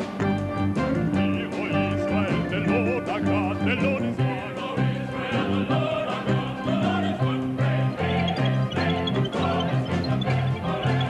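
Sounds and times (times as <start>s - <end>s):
man singing with operatic vibrato: 1.2s - 11.0s.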